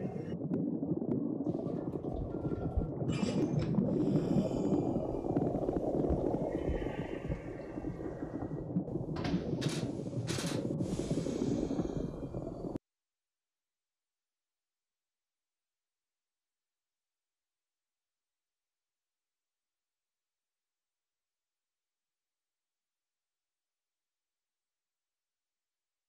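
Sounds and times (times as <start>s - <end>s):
water rushing and gurgling: 0.0s - 12.8s
hissy water splashes: 1.4s - 12.8s.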